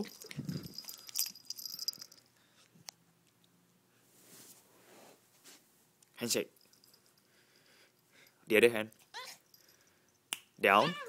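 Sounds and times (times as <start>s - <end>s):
small metal pieces jingling: 0.0s - 2.3s.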